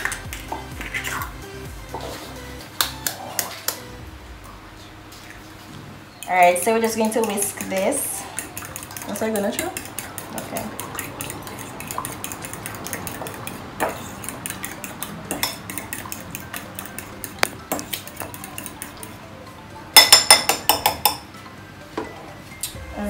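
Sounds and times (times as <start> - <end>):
metal whisk clinking against glass: 7.0 - 19.2.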